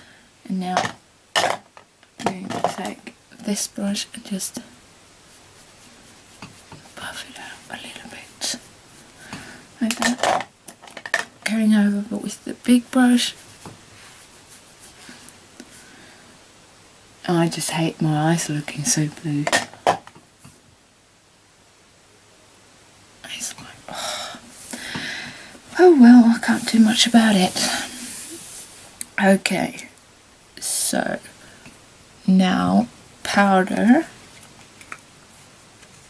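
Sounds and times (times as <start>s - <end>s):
powder brush swishing on skin: 5.2s - 9.2s, 12.6s - 15.8s, 26.1s - 28.9s
person whispering: 6.9s - 8.6s, 23.2s - 24.5s
person speaking: 11.4s - 13.4s, 17.2s - 19.6s, 25.7s - 29.9s.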